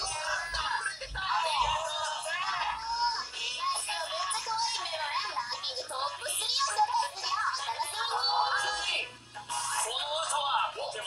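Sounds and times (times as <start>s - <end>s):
music with singing from tv speaker: 0.0s - 11.0s.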